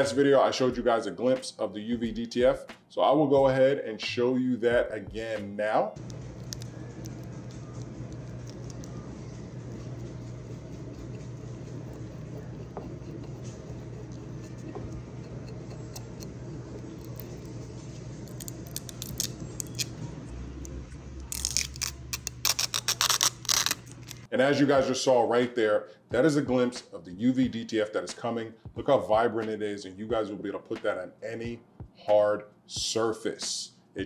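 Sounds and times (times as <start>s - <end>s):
steady low hum: 5.9s - 25.0s
plastic film crackling as peeled: 6.0s - 11.8s, 16.9s - 19.9s, 21.3s - 24.3s
faint rubbing: 8.3s - 18.2s.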